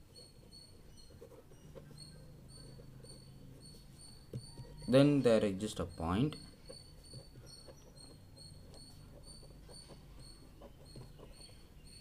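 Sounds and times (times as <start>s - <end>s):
pen scratching on paper: 0.0s - 5.7s, 6.3s - 12.0s.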